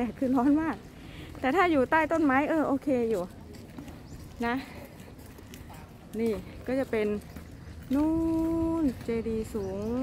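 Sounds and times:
woman speaking: 0.0s - 0.8s, 1.4s - 3.3s, 4.4s - 4.9s, 6.1s - 10.0s
footsteps on paving: 0.0s - 10.0s.

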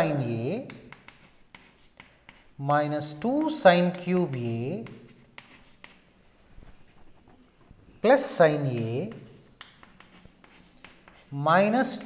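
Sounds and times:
chalk writing on chalkboard: 0.0s - 6.2s, 8.6s - 12.0s.

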